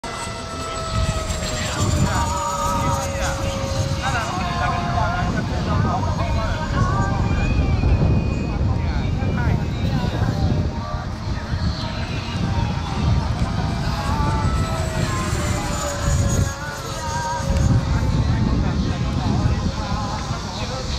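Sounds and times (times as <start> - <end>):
model airplane engine drone: 0.0 - 20.9
wind rumble on microphone: 0.0 - 20.9.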